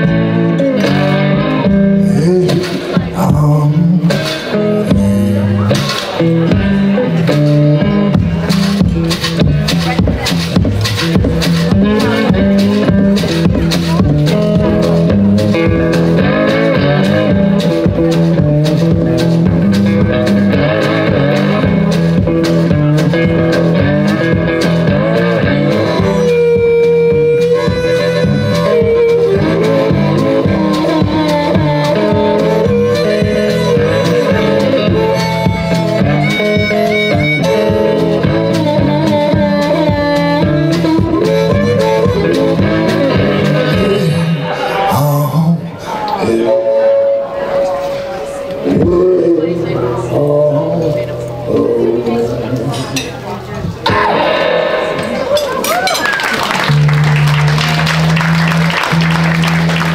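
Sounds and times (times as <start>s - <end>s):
stomped beat: 0.0s - 44.9s, 53.8s - 59.9s
electric guitar playing blues: 0.0s - 59.9s
harmonica wavering note: 25.5s - 44.4s.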